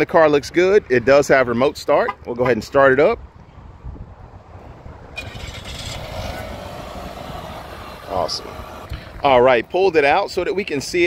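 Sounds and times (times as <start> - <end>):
car engine starting and idling: 5.1 - 9.3.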